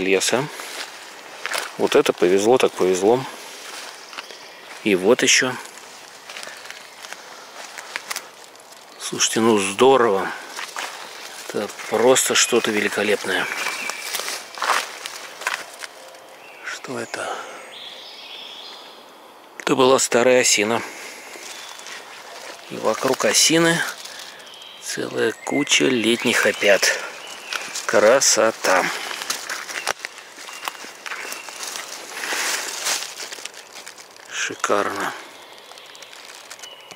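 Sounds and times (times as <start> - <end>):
footsteps on leaf litter: 0.0 - 16.5, 20.8 - 36.9.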